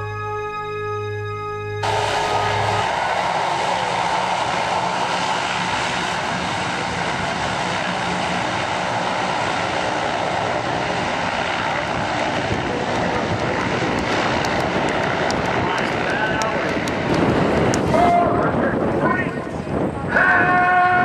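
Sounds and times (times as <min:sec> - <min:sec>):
low hum: 0:00.0 - 0:17.9
turboprop aircraft engines drone: 0:00.0 - 0:21.0.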